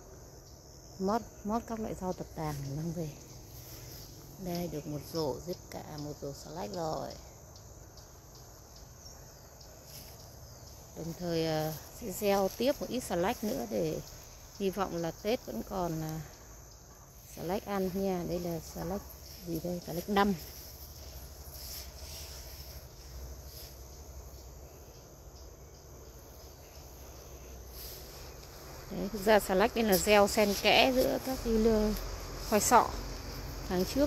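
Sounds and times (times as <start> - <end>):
crickets chirring: 0.0 - 34.0.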